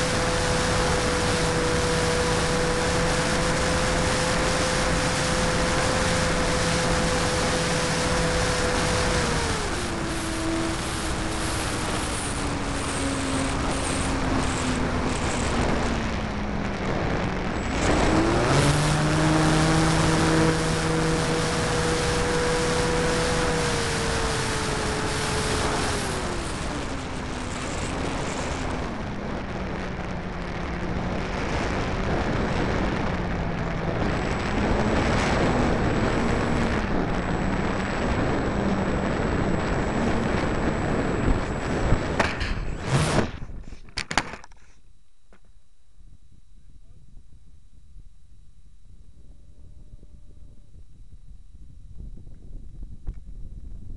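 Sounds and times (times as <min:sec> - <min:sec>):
wind rush: 0:00.0 - 0:44.2, 0:48.8 - 0:53.9
model plane motor and propeller: 0:00.0 - 0:44.8.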